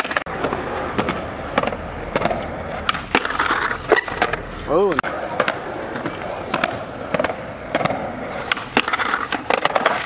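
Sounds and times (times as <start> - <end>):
skateboard clacks: 0.0 - 10.0
skateboard wheels rolling on concrete: 0.0 - 10.0.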